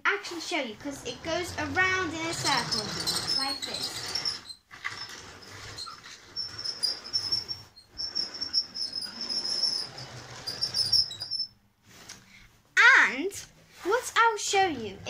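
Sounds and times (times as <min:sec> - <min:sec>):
toy train wheels squeaking: 0:00.8 - 0:11.5.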